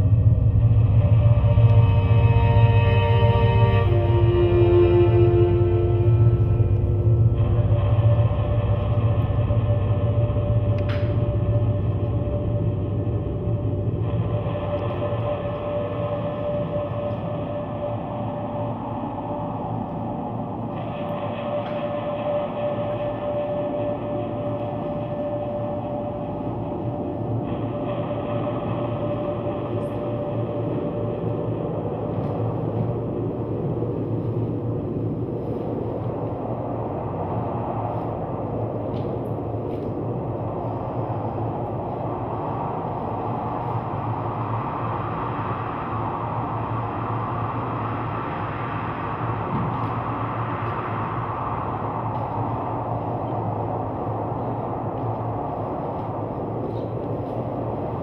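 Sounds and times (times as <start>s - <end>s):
rumbling drone: 0.0s - 58.0s.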